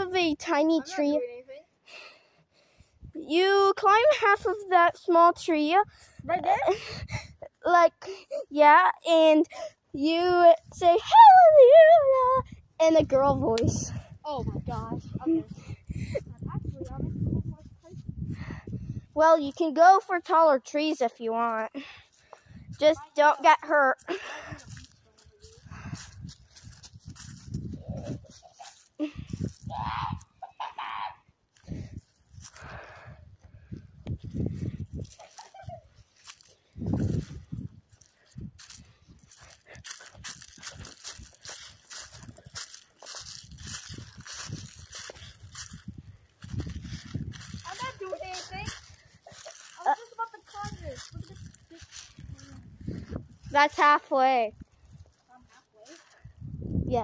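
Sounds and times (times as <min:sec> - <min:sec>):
wind and handling rumble: 0:12.3 - 0:19.6, 0:24.0 - 0:28.5, 0:31.5 - 0:57.0
footsteps in dry leaves: 0:21.5 - 0:29.7, 0:31.5 - 0:32.9, 0:34.2 - 0:56.3.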